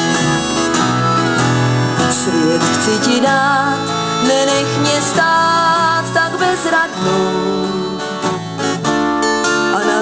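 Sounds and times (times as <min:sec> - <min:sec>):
harmonica playing: 0:00.0 - 0:09.7
acoustic guitar: 0:00.0 - 0:10.0
bass: 0:00.0 - 0:10.0.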